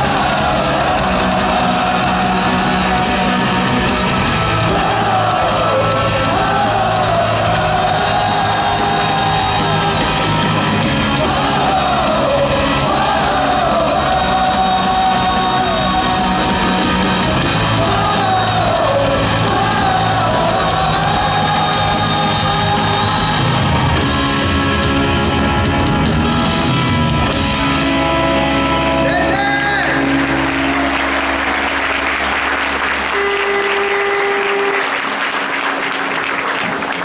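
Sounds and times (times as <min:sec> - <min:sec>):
live rock band playing: 0:00.0 - 0:35.6
people shouting and yelling: 0:29.0 - 0:31.2.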